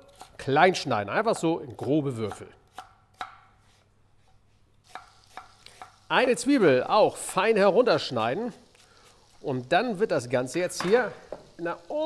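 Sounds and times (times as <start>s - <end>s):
knife on wooden cutting board: 2.2s - 6.0s.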